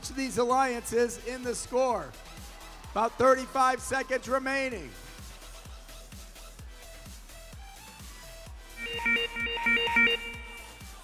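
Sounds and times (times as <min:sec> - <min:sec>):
background music with steady beat: 0:00.0 - 0:11.0
rapid electronic beeps: 0:08.8 - 0:11.0.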